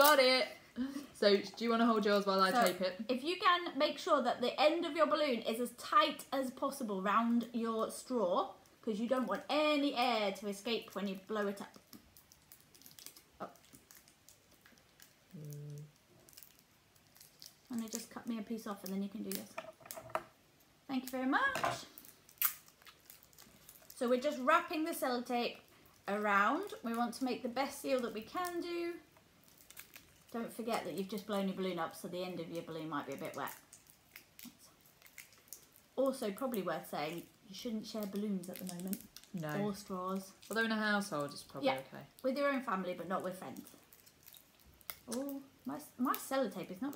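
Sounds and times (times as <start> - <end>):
rubber balloon crinkling: 10.5 - 20.3, 21.0 - 46.9
person humming: 15.3 - 15.9.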